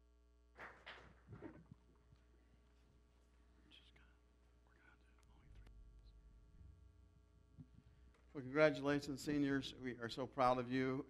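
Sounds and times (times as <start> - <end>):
low hum: 1.2 - 8.4.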